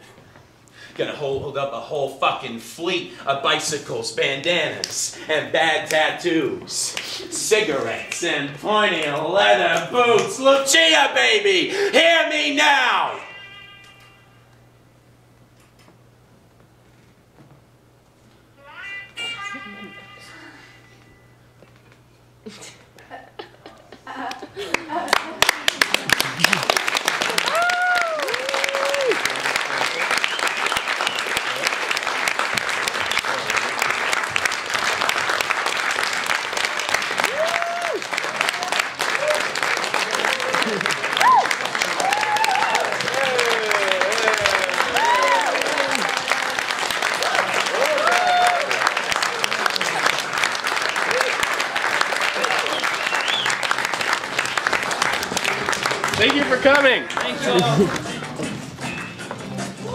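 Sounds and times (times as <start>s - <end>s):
audience applauding: 24.2s - 59.2s
whoops and cheers: 27.3s - 29.3s, 36.7s - 46.5s, 47.2s - 49.0s, 51.0s - 51.5s.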